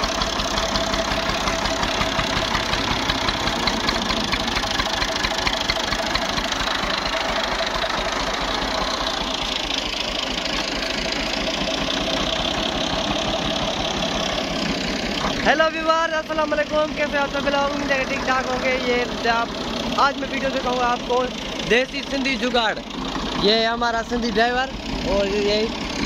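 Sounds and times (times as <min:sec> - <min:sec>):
tractor diesel engine knocking: 0:00.0 - 0:26.0.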